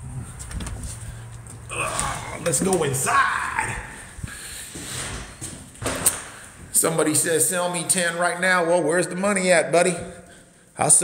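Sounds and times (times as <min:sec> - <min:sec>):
footsteps on wooden floor: 0:00.4 - 0:03.0.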